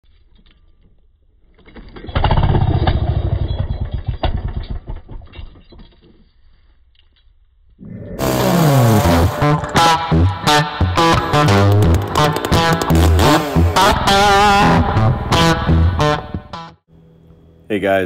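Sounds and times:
chainsaw pull-starting: 8.2 - 9.9, 10.9 - 14.2
music: 8.2 - 16.9.

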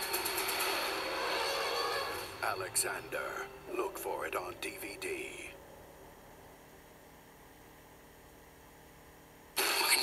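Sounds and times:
loud noisy trailer soundtrack: 0.0 - 3.6
faint steady hum: 0.0 - 10.0.

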